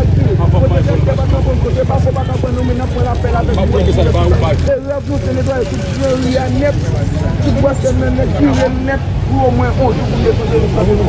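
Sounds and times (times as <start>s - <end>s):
engine rumbling: 0.0s - 11.0s
people talking: 0.0s - 11.0s.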